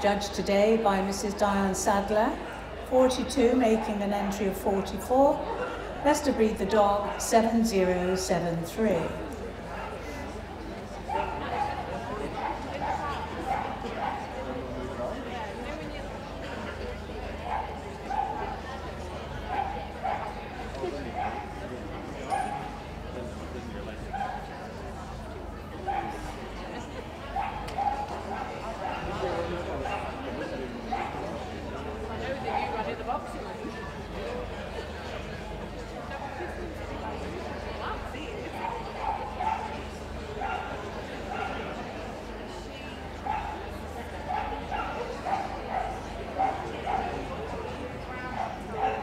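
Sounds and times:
crowd chatter: 0.0 - 49.0
murmur of people talking: 0.0 - 49.0
dogs barking: 11.1 - 14.4, 17.4 - 18.6, 19.5 - 20.4, 21.1 - 21.6, 22.3 - 22.8, 24.1 - 24.5, 25.9 - 26.2, 27.3 - 30.2, 30.9 - 31.3, 38.6 - 39.8, 40.4 - 41.6, 43.2 - 43.6, 44.2 - 47.3, 48.2 - 49.0.

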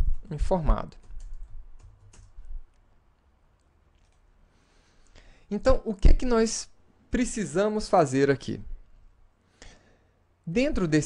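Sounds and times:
computer keyboard typing: 0.0 - 2.8.

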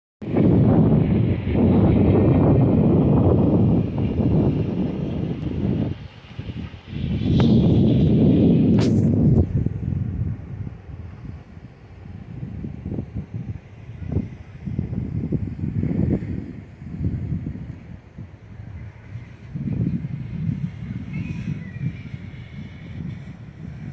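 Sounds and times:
wind buffeting microphone: 0.2 - 23.9.

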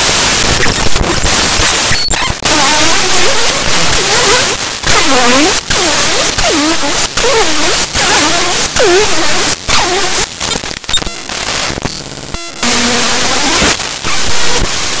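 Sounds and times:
loud static hiss: 0.0 - 15.0.

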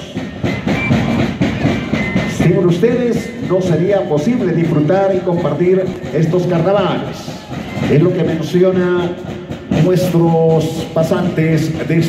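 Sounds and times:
cane flutes with drums: 0.0 - 12.0
sharp drum strokes: 0.0 - 12.0.

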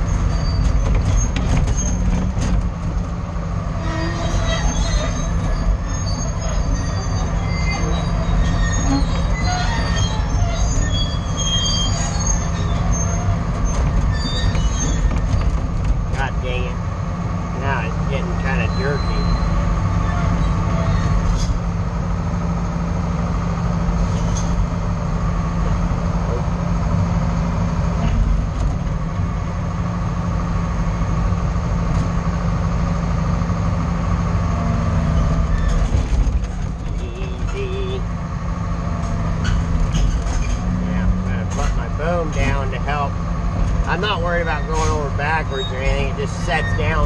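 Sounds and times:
squeals and creaks: 0.0 - 2.5, 3.7 - 15.7, 18.4 - 21.7, 24.0 - 24.6, 34.9 - 38.1, 39.1 - 42.7, 43.9 - 47.0
diesel engine running under load: 0.0 - 47.0.

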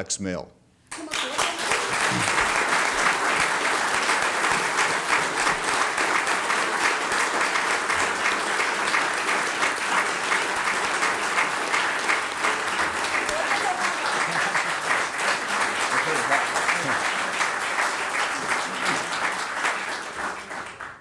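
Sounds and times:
crowd applauding: 0.9 - 21.0.

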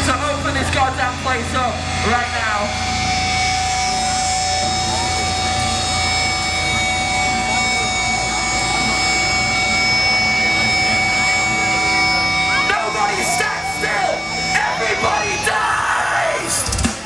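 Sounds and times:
distorted amplifier drone: 0.0 - 17.0
electric guitar feedback: 0.0 - 17.0.

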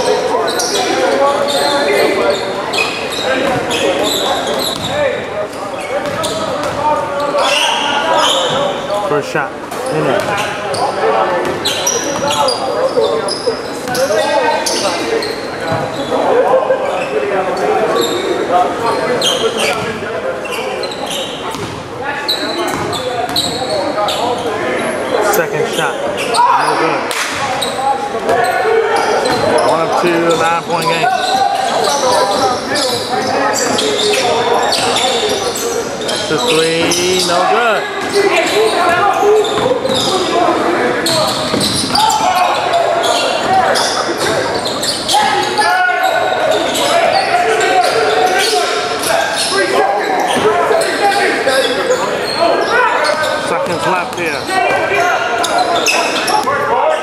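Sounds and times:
players and spectators talking: 0.0 - 57.0.

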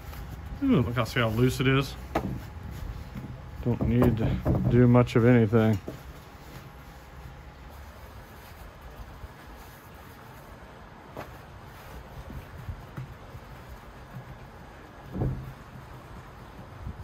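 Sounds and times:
thump: 15.1 - 15.6.

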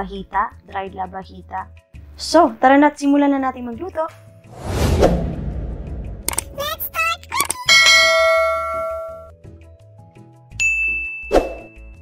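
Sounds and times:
swish: 4.5 - 7.1.

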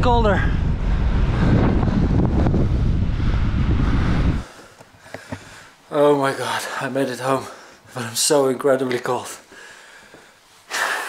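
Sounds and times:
wind buffeting microphone: 0.0 - 4.5.

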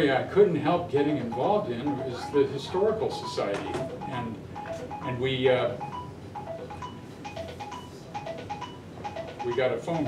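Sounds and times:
phone ringtone chiming melody: 1.1 - 10.0.

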